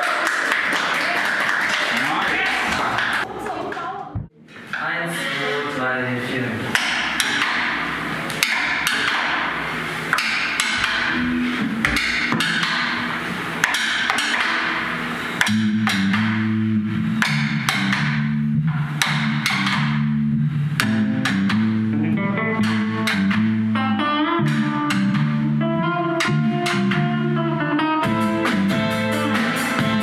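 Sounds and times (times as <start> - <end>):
bass and electric guitar riff: 6.6 - 30.0
drum kit with cymbals: 28.0 - 30.0.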